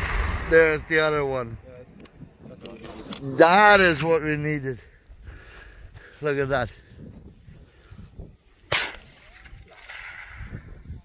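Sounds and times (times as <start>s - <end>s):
rifle shot with echo: 0.0s - 1.8s.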